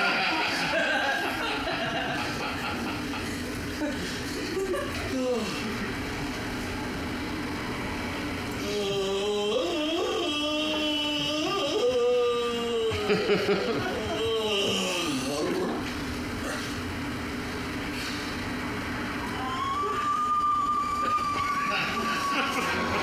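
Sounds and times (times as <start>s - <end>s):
person yawning: 8.6s - 13.3s.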